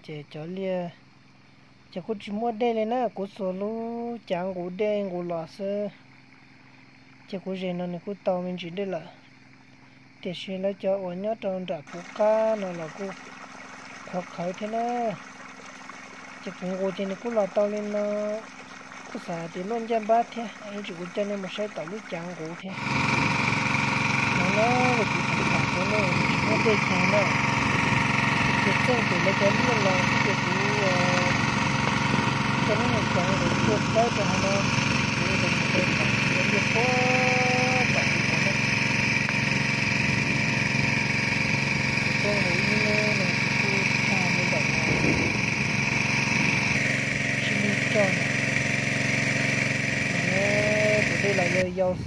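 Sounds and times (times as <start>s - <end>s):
person's voice: 10.3s - 13.2s, 14.1s - 15.2s, 16.5s - 18.5s, 19.2s - 23.0s, 24.3s - 27.4s, 28.6s - 31.4s, 32.6s - 38.7s, 42.1s - 45.4s, 47.4s - 48.3s, 50.1s - 52.0s
petrol water pump running: 11.7s - 52.0s
small engine idling: 11.8s - 52.0s.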